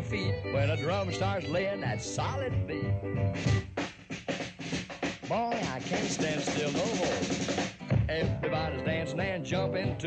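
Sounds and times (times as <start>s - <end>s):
drum break on drum kit: 2.2s - 10.0s.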